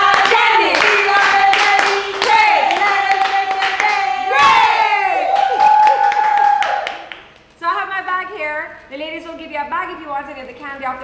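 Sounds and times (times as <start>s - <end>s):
hand claps: 0.0s - 4.2s, 5.3s - 7.5s
women singing: 0.0s - 5.2s.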